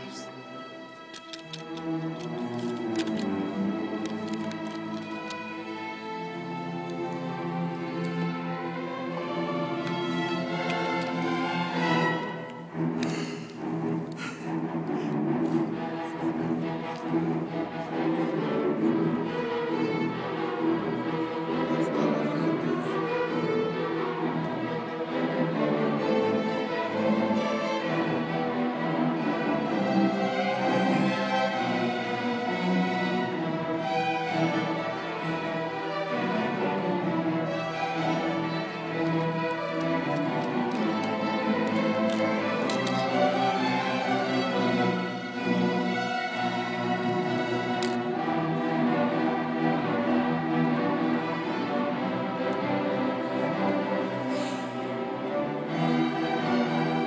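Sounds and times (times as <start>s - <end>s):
orchestra playing: 0.0s - 57.0s
violins and cellos: 0.0s - 57.0s.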